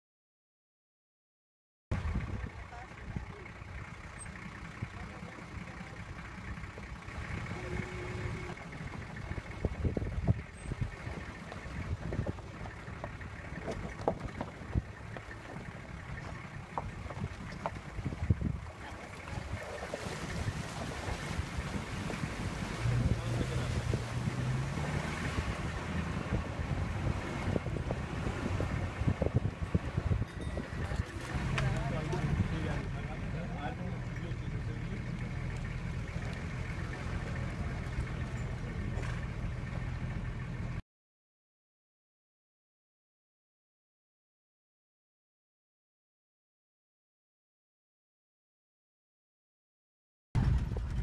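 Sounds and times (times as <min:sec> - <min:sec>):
car engine and road rumble: 0:01.9 - 0:40.8, 0:50.4 - 0:51.0
knocks and jolts from rough road: 0:01.9 - 0:40.8, 0:50.4 - 0:51.0
wind blowing across microphone: 0:02.0 - 0:03.3, 0:08.8 - 0:12.8, 0:16.8 - 0:32.8, 0:50.4 - 0:51.0.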